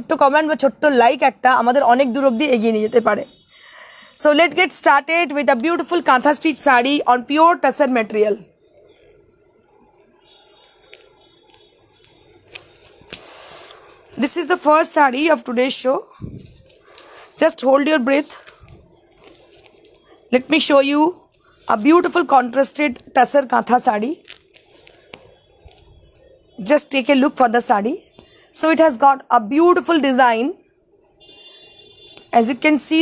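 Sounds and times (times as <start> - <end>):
fabric rustling as it is shaken: 12.2 - 26.4.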